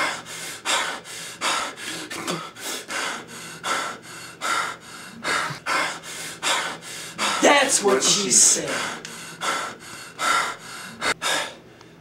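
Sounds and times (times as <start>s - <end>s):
person breathing rapidly: 0.0s - 12.0s.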